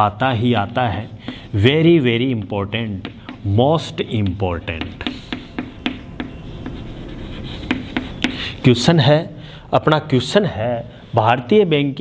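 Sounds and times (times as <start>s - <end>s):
chalk tapping on board: 0.0s - 8.6s
chalk scratching on chalkboard: 0.0s - 8.7s.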